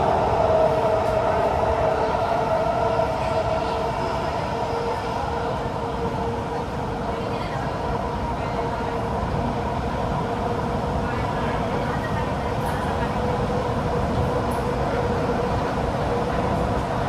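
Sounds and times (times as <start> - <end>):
train wheels rumbling on rail: 0.0 - 17.0
train whine: 0.0 - 17.0.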